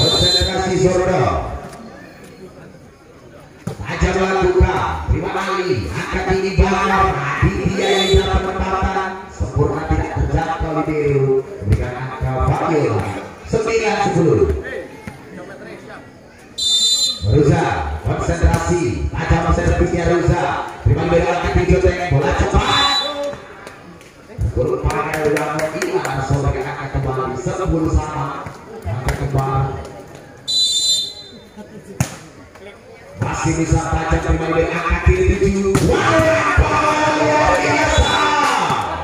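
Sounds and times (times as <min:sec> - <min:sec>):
referee's whistle blast: 0:00.0 - 0:00.7, 0:07.8 - 0:08.5, 0:16.6 - 0:17.4, 0:22.6 - 0:23.3, 0:30.5 - 0:31.5, 0:37.6 - 0:38.4.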